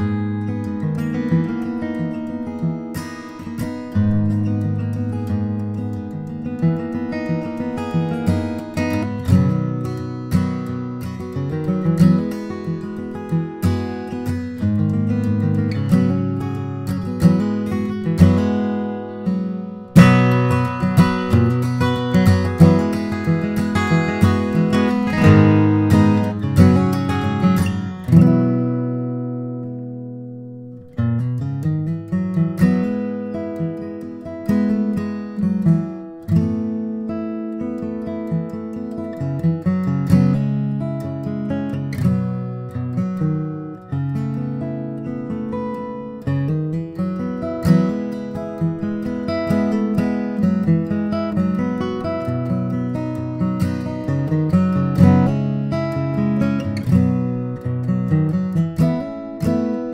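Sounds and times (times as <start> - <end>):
acoustic guitar playing: 0.0 - 59.9.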